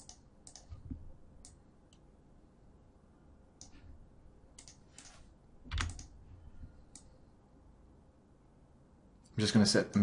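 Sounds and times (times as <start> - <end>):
computer keyboard key presses: 5.7 - 6.1.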